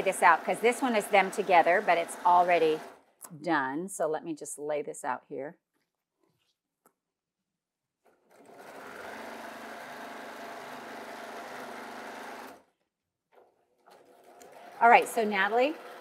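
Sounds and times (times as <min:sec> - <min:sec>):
electric sewing machine stitching: 0:00.0 - 0:03.1, 0:08.0 - 0:12.8, 0:13.4 - 0:16.0.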